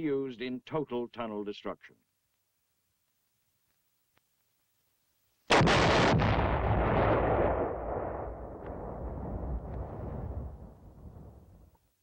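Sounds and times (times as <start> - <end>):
sharp explosion blasts: 5.5 - 11.6
deep explosion rumble: 5.5 - 11.7.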